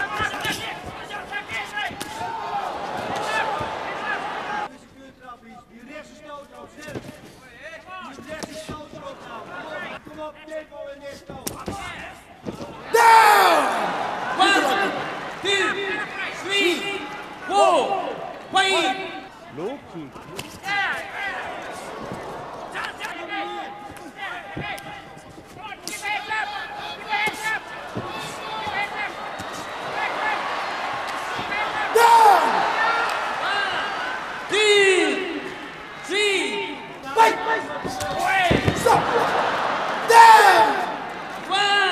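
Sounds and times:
man commentating: 0:00.0 - 0:06.4, 0:12.8 - 0:41.9
commentator talking: 0:13.0 - 0:21.6
thuds of kickboxing blows: 0:27.3 - 0:30.0, 0:37.8 - 0:39.3.

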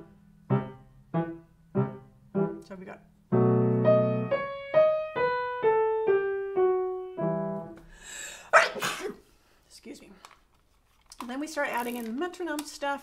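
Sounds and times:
slow piano melody: 0:00.0 - 0:07.8
person sneezing: 0:08.0 - 0:09.3.

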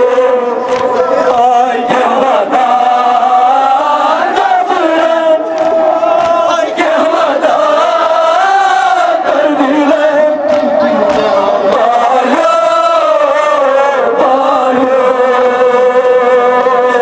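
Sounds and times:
crowd of men chanting: 0:00.0 - 0:17.0.

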